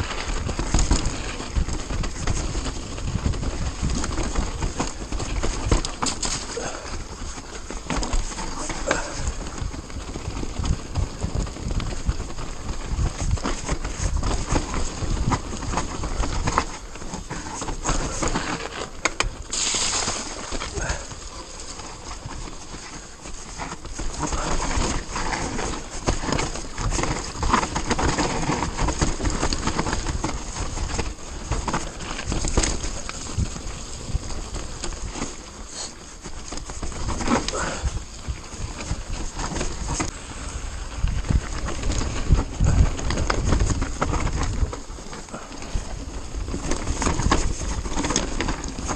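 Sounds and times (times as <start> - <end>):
bike knocking and rattling: 0.0 - 48.9
tyres rolling over dirt: 0.0 - 48.9.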